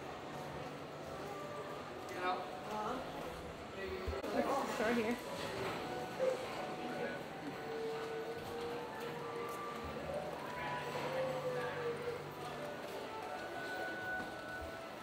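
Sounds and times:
music with held notes: 0:05.6 - 0:15.0.

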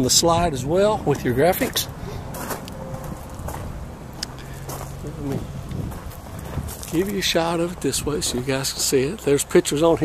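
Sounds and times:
footsteps on gravel: 0:01.6 - 0:09.3.

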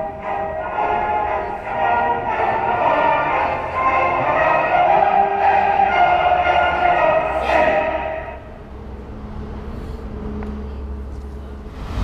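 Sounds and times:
music: 0:00.0 - 0:11.1
low outdoor rumble: 0:08.4 - 0:12.0.

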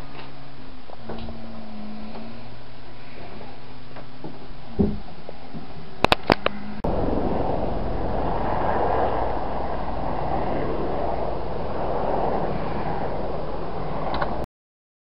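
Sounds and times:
low rumble: 0:00.9 - 0:03.9, 0:06.0 - 0:14.5
loud rushing outdoor noise: 0:06.1 - 0:14.5.

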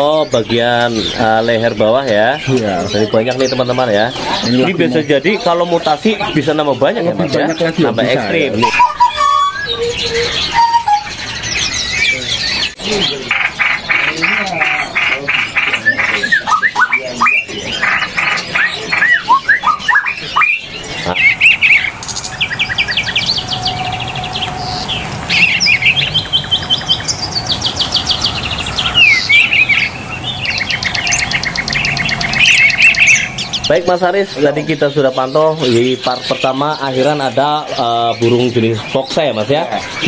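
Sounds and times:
songbirds chirping and trilling: 0:00.0 - 0:40.0.

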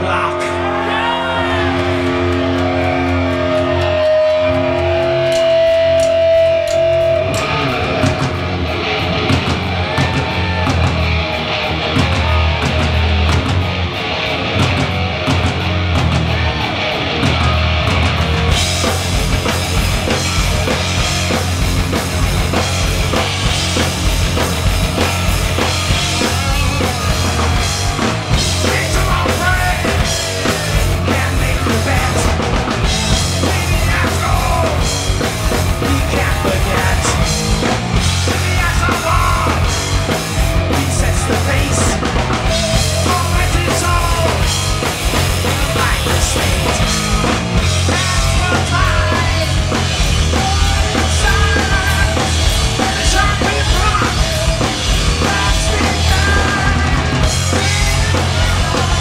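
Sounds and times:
bass guitar: 0:00.0 - 0:59.0
drum kit: 0:00.0 - 0:59.0
electric guitar: 0:00.0 - 0:59.0.

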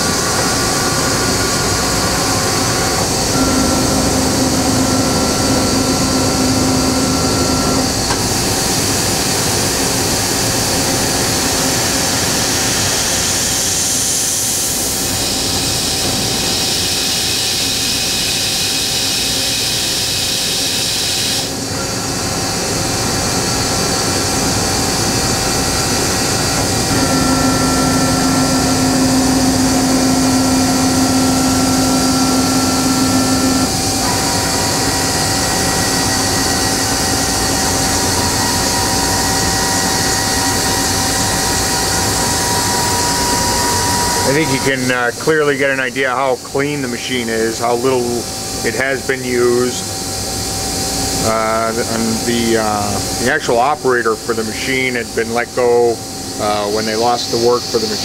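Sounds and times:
machine hum and hiss: 0:00.0 - 0:58.0
machine whining tones: 0:00.0 - 0:58.0.

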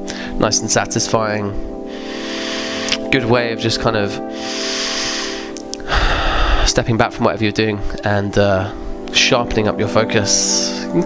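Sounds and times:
soft music of held tones: 0:00.0 - 0:11.0
long breath out: 0:01.9 - 0:03.0, 0:04.3 - 0:06.7
short breath in: 0:01.9 - 0:03.0, 0:04.3 - 0:06.7.

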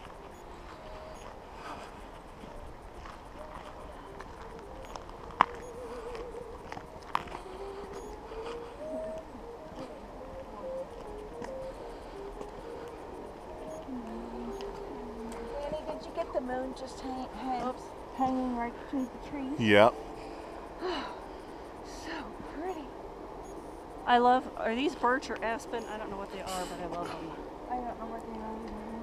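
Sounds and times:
faint wavering tone: 0:00.0 - 0:29.0.

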